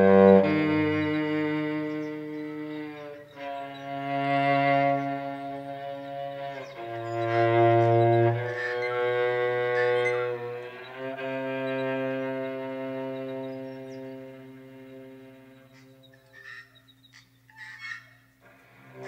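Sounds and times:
low bowed string notes: 0.0s - 16.9s, 18.4s - 19.0s.

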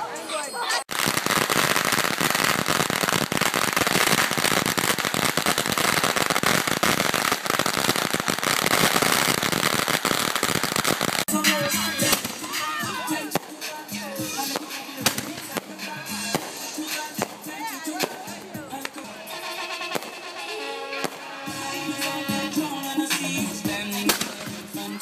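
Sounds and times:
fireworks crackling: 0.3s - 25.0s.

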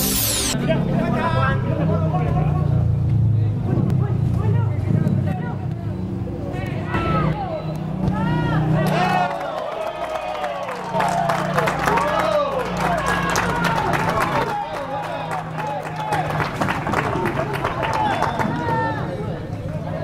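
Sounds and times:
electronic whoosh: 0.0s - 0.7s.

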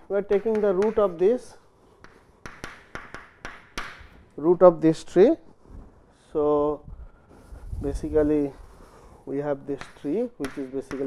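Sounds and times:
chalk tapping on blackboard: 0.0s - 4.3s, 9.6s - 11.0s
chalk scratching strokes: 7.1s - 11.0s.

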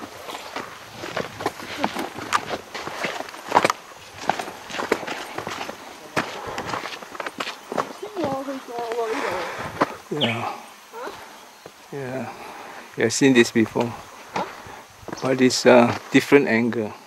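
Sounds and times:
footsteps on gritty dirt track: 0.0s - 10.1s, 13.6s - 16.3s.

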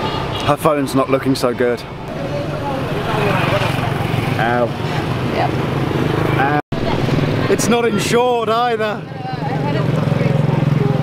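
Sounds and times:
small motorbike engine running: 2.5s - 4.6s.

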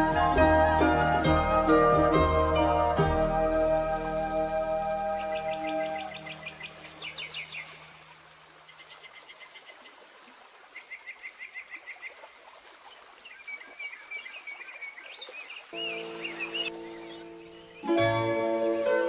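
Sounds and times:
folk tune held notes: 0.0s - 6.5s
faint birdsong: 3.5s - 10.0s, 10.6s - 18.2s.

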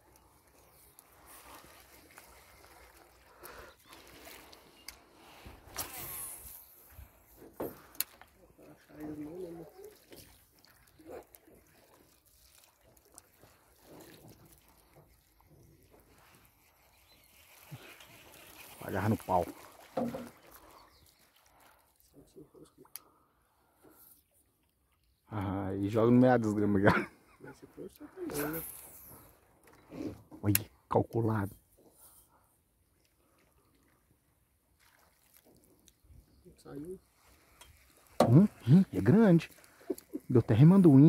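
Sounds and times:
water sloshing around a boat: 0.0s - 41.0s.

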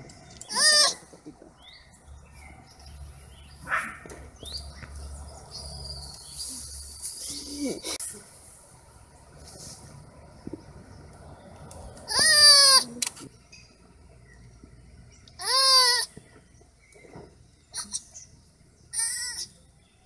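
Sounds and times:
baby sloth bleating cry: 0.5s - 1.0s, 12.1s - 13.0s, 15.4s - 16.1s, 18.9s - 19.6s.

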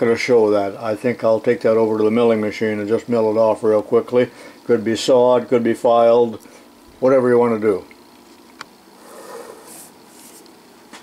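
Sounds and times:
soft rustling: 9.7s - 10.6s.

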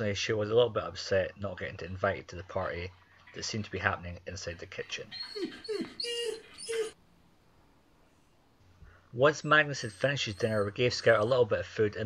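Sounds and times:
dog whining: 5.0s - 7.0s, 9.5s - 11.4s.

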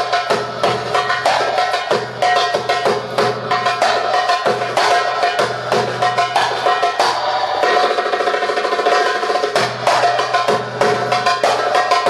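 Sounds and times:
goblet drum played by hand: 0.0s - 12.0s.

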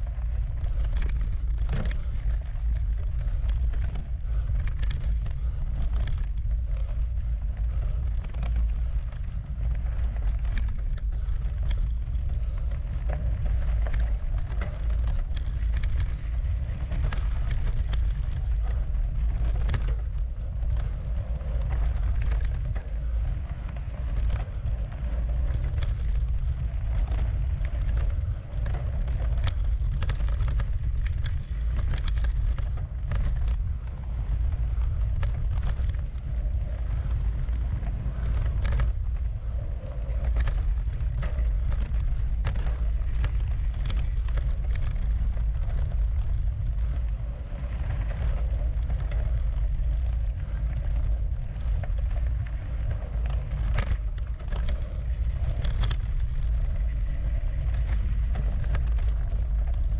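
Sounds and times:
bike clicks and rattles: 0.0s - 59.9s
tyre and wind rumble: 0.0s - 59.9s.

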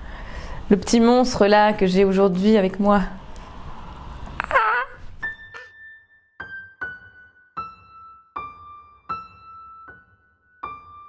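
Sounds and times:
child squealing: 4.4s - 5.0s
soft piano music: 5.2s - 11.0s.

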